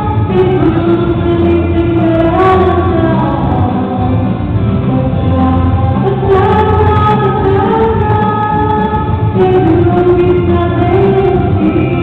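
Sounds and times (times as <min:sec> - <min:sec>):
backing track: 0:00.0 - 0:12.0
girl singing pop song: 0:00.0 - 0:12.0.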